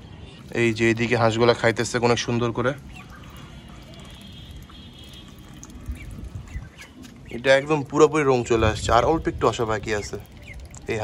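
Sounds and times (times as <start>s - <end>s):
ducks splashing in water: 2.0s - 8.4s, 9.6s - 11.0s.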